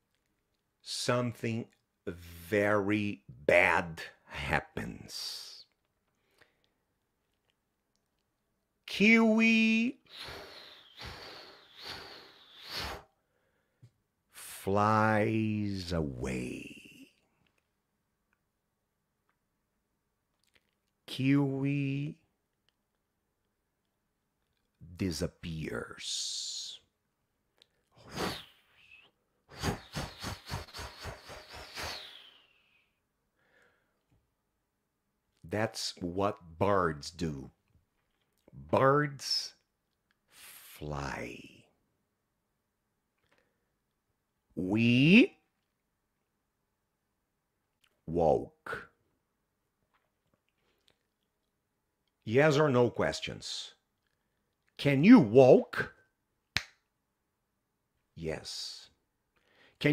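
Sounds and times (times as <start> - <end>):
high steady whistle: 10.0 - 13.1, 28.1 - 33.0
imitated bird wing flutter: 29.6 - 32.3.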